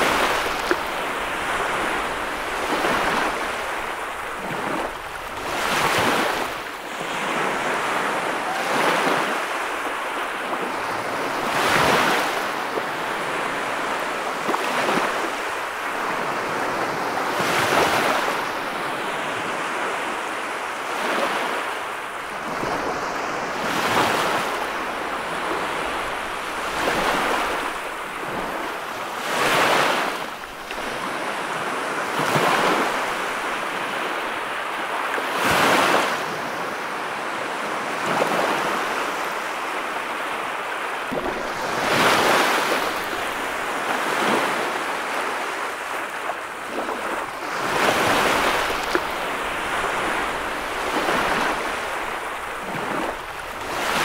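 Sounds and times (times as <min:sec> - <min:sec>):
surf washing up a beach: 0:00.0 - 0:54.0.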